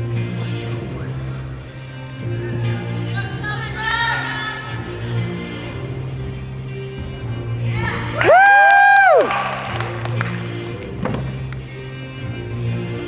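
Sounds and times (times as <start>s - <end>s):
music playing: 0.0s - 13.0s
spectators cheering: 8.2s - 9.9s.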